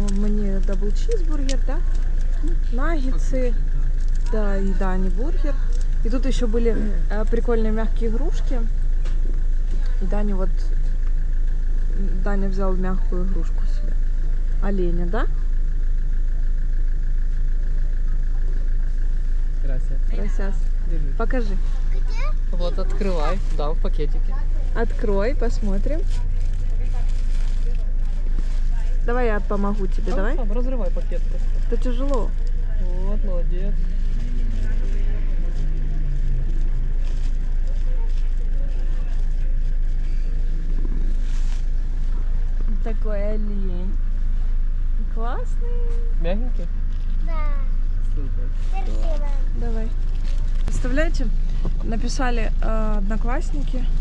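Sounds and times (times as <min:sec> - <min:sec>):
car engine idling: 0:00.0 - 0:54.0.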